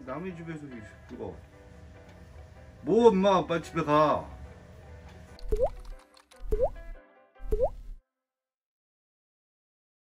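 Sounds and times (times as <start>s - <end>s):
faint music: 0.0s - 7.8s
cartoon water-drop bloops: 5.4s - 5.8s, 6.4s - 8.0s.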